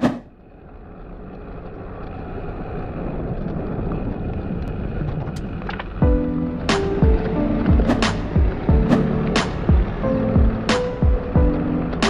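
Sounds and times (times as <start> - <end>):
bike road rumble: 0.0 - 12.0
wind rushing over microphone: 0.0 - 12.0.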